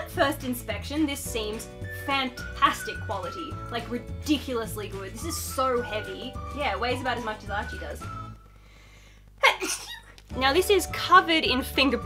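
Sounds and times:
woman laughing: 9.4s - 10.2s.

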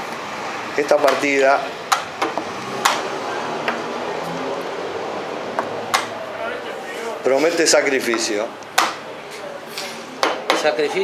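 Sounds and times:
low murmur of voices: 6.1s - 11.0s.

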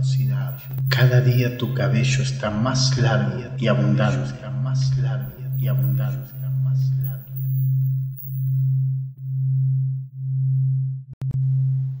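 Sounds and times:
low pulsing electronic tone: 0.0s - 2.9s, 5.2s - 12.0s.

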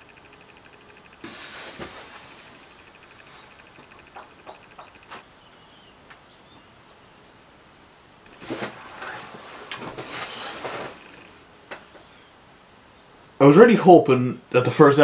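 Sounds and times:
chair creaking: 1.2s - 5.3s, 8.3s - 12.1s
clothes rustling: 8.3s - 11.4s.

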